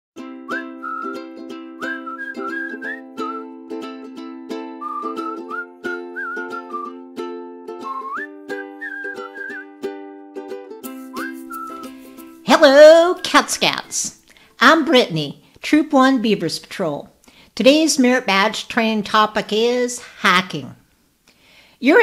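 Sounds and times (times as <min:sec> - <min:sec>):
whistled melody: 0:00.2 - 0:12.4.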